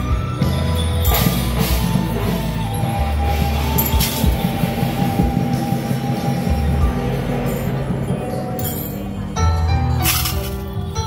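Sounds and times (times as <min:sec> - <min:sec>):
clashing metal percussion: 0:00.0 - 0:11.0
drums: 0:00.0 - 0:11.0.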